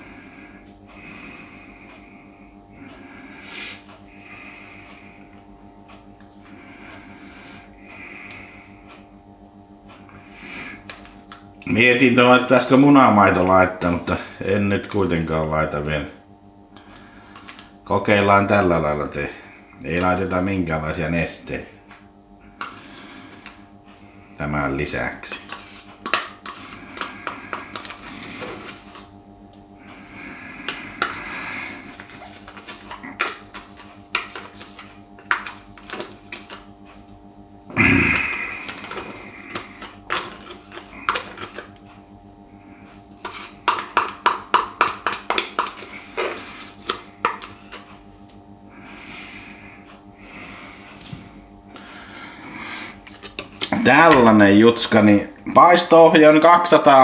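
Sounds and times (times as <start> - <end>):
faint steady hum: 0.0 - 57.0
utensil scraping containers: 25.2 - 29.1, 30.6 - 36.7, 38.6 - 41.8, 43.2 - 47.9, 52.8 - 54.4.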